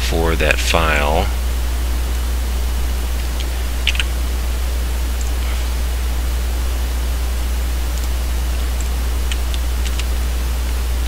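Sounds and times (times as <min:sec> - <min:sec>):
low electrical hum: 0:00.0 - 0:11.0
microphone hiss: 0:00.0 - 0:11.0.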